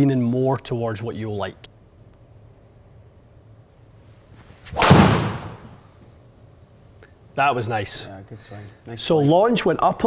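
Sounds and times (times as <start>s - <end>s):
golf driver striking ball: 4.8s - 5.8s.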